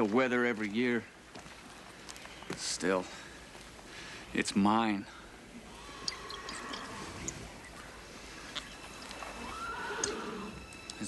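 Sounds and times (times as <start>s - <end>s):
horse whinnying: 5.7s - 7.4s, 9.0s - 10.6s.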